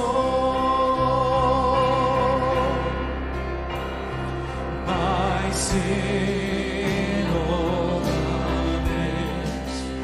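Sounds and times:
guitars: 0.0s - 10.0s.

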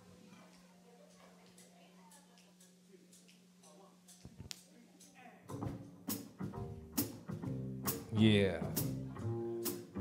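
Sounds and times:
plucked upright bass: 6.5s - 10.0s.

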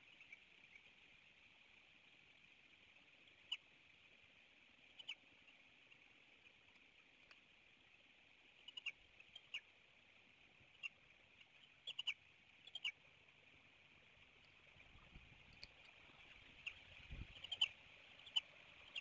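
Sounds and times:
faint steady hiss: 0.0s - 19.0s
eagle chirps: 16.6s - 19.0s.

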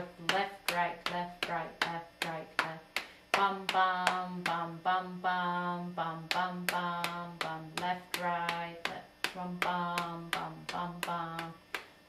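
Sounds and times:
hands tapping a beat: 0.0s - 4.8s, 6.2s - 12.0s
woman singing a rhythm: 0.0s - 12.0s.

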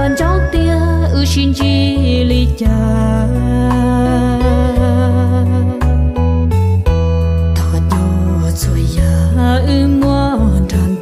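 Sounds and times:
slow instrumental song: 0.0s - 11.0s.

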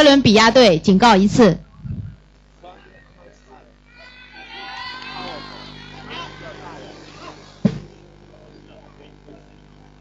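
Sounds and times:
low steady hum: 0.0s - 10.0s
faint crowd voices: 1.6s - 10.0s
sharp thump: 7.6s - 8.0s.

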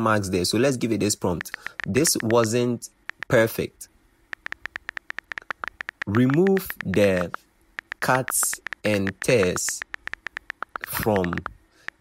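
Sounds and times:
phone keyboard clicking: 1.3s - 3.5s, 4.3s - 12.0s.

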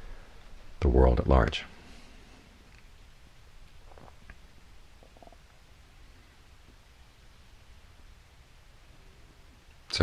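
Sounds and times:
steady low hum: 0.0s - 10.0s
faint gurgle: 5.0s - 5.6s.

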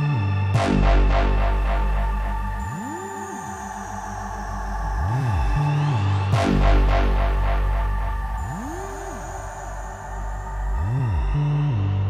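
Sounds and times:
deep sub bass: 0.0s - 12.0s
sustained synth pad: 0.0s - 12.0s
swooping bass note: 0.6s - 12.0s.

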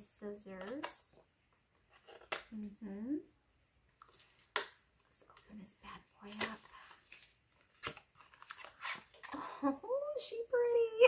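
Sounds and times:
scissors snipping packaging: 6.2s - 9.0s.

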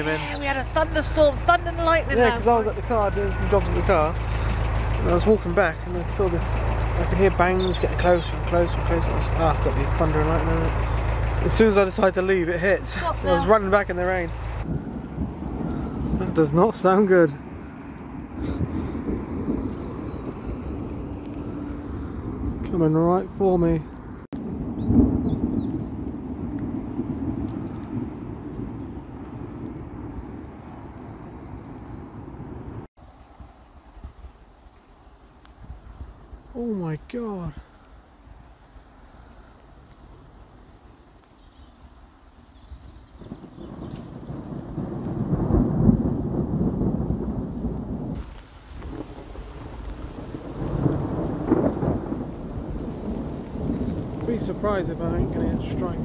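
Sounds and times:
rolling thunder rumbles: 0.0s - 32.9s, 41.8s - 56.0s.

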